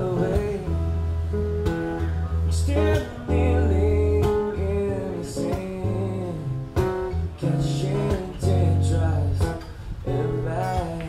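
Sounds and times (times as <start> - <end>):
man singing: 0.0 - 1.1, 2.4 - 11.0
acoustic guitar chords: 0.0 - 11.0.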